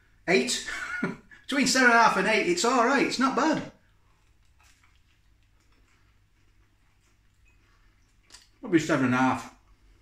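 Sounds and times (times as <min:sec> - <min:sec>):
faint mouth clicks chewing: 0:03.8 - 0:08.6.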